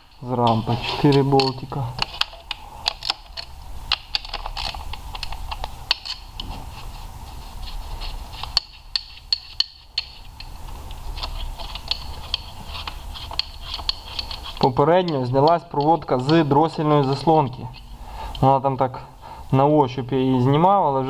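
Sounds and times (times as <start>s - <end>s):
ratchet wrench clicking: 11.2s - 16.4s.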